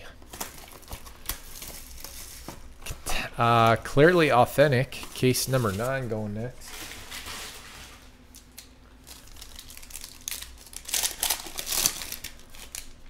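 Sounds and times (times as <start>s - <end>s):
foil wrapper crinkling: 0.2s - 13.0s.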